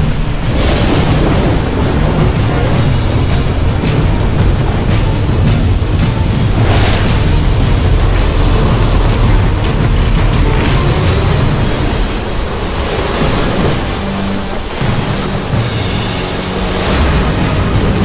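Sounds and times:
low background music: 0.0 - 18.0
rushing wind whooshes: 0.0 - 18.0.

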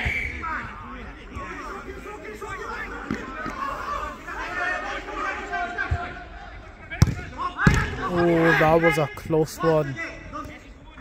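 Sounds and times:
players calling: 0.0 - 11.0
football being struck: 7.0 - 8.0.

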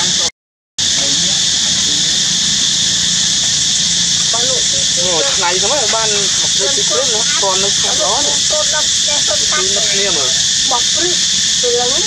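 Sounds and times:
loud steady high hiss: 0.0 - 12.0
high-pitched voice talking: 6.3 - 12.0.

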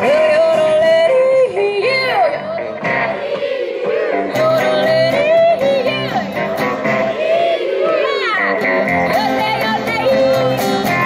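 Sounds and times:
country band guitars: 0.0 - 11.0.

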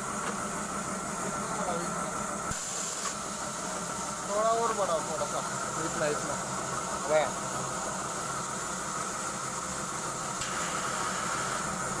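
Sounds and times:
machine humming and hissing: 0.0 - 12.0.

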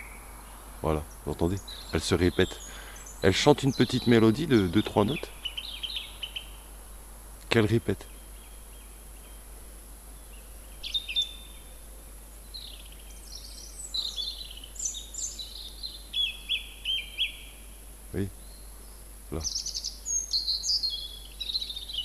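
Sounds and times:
song thrush singing: 0.0 - 22.0.

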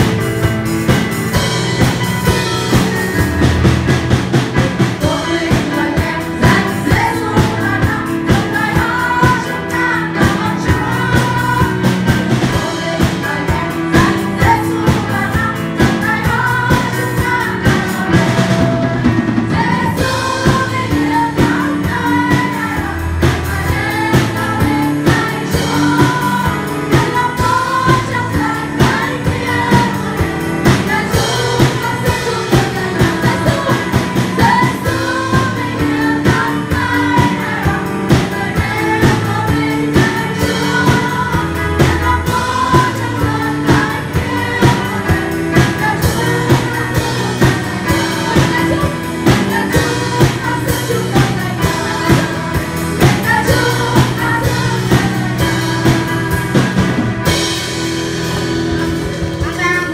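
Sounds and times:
drum kit steady beat: 0.0 - 59.9
guitar: 0.0 - 59.9
live band playing: 0.0 - 59.9
women singing: 4.5 - 57.6.

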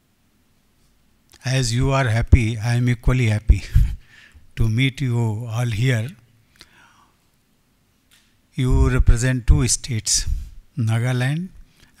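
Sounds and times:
man speaking into a microphone: 1.4 - 4.0, 4.6 - 6.2, 8.6 - 11.6.

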